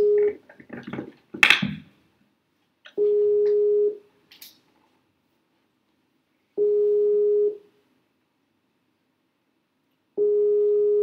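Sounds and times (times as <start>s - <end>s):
video call ringing beep: 0.0s - 0.4s, 3.0s - 4.0s, 6.6s - 7.6s, 10.2s - 11.0s.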